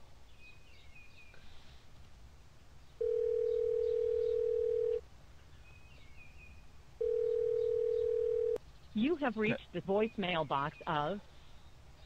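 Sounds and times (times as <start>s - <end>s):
telephone ringback tone: 3.0s - 5.0s, 7.0s - 8.6s.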